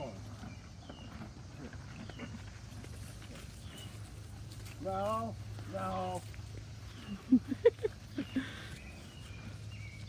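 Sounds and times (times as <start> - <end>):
horses chewing husks: 0.0 - 10.0.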